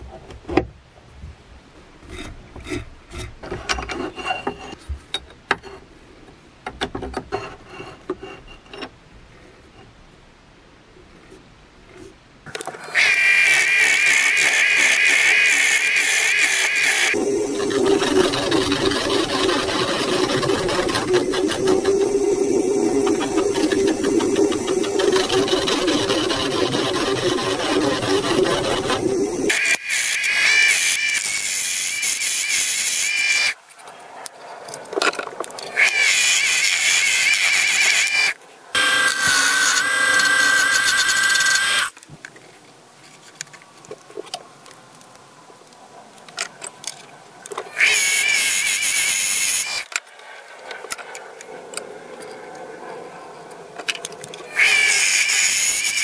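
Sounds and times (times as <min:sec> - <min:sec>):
wood lathe whine: 0:12.9 - 0:33.6, 0:35.8 - 0:41.9, 0:54.6 - 0:56.0.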